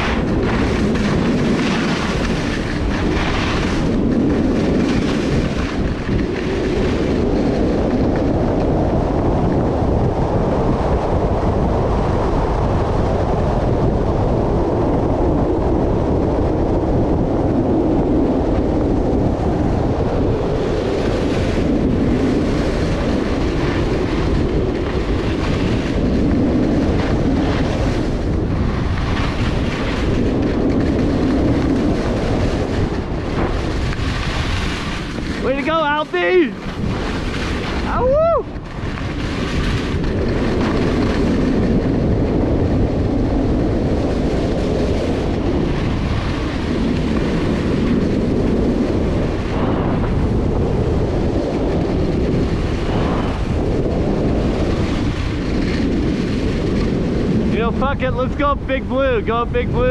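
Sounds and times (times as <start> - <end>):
skis running over packed snow: 0.0 - 16.7, 17.3 - 59.9
wind rushing over microphone: 0.0 - 59.9.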